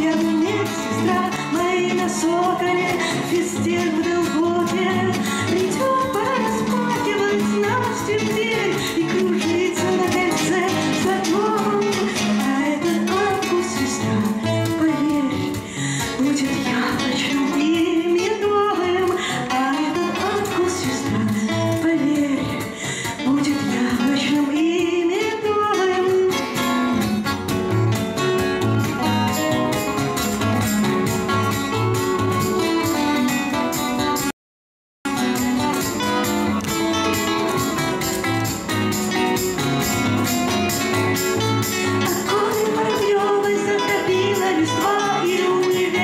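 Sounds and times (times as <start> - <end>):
woman singing: 0.0 - 26.7, 41.8 - 46.0
cajon percussion: 0.0 - 34.3, 35.0 - 46.0
steel-string acoustic guitar: 0.0 - 34.3, 35.1 - 46.0
nylon-string classical guitar: 23.4 - 34.3, 35.1 - 46.0.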